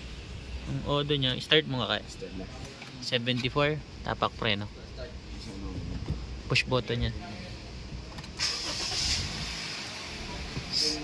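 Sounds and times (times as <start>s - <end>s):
car engine starting: 8.0s - 11.0s.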